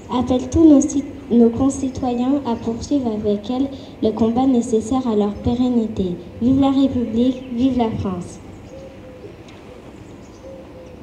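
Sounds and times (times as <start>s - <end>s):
low outdoor rumble: 0.0s - 11.0s
pigeon cooing: 8.7s - 9.8s, 10.4s - 11.0s.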